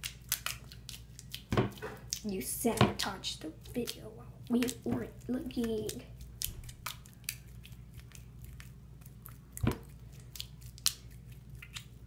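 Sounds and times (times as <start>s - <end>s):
slime making wet clicks: 0.0s - 1.5s, 3.8s - 12.0s.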